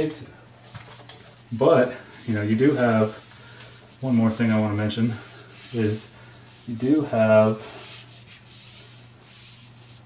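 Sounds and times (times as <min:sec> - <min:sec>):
faint steady hum: 0:00.0 - 0:10.0
felt rubbing on whiteboard: 0:02.3 - 0:10.0.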